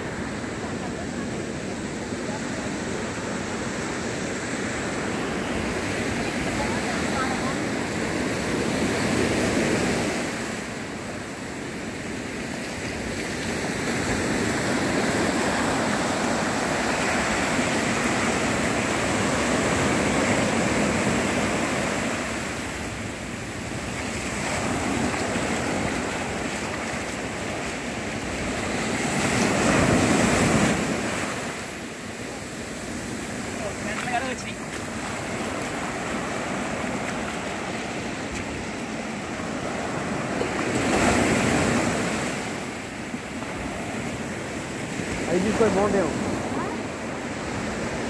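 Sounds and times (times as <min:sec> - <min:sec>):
surf breaking on shore: 0:00.0 - 0:48.0.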